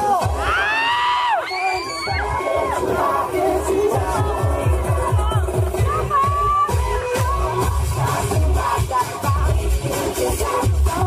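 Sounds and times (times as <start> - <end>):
crowd cheering and shouting: 0.0 - 9.5
dance music beat: 0.0 - 11.0.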